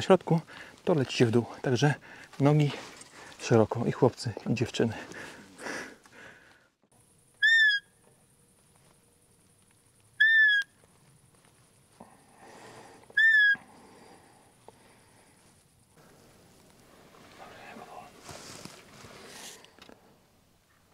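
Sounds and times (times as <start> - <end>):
high whistled deer call squeaks: 7.4 - 8.0, 10.2 - 10.7, 13.2 - 13.6.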